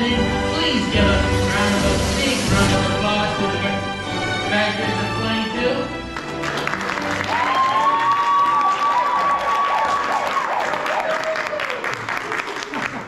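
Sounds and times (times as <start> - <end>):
audience applauding: 6.1 - 13.0
long drawn-out cheer: 6.5 - 13.0.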